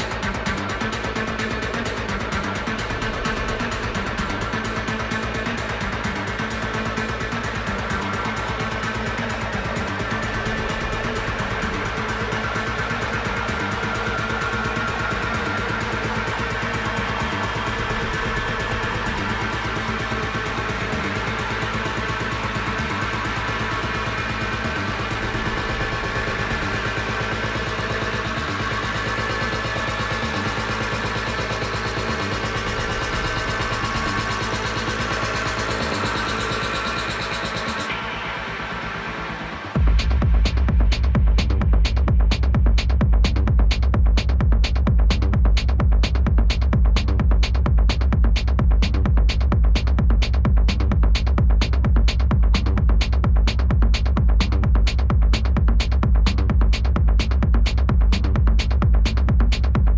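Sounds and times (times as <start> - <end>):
kick drum beat: 0.0 - 38.0, 39.8 - 59.9
techno music: 0.0 - 59.9.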